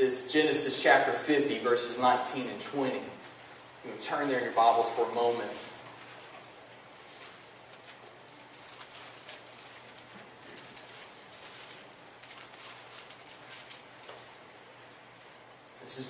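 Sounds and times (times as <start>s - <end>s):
low room hum: 0.0s - 16.0s
pages being turned: 7.0s - 14.5s.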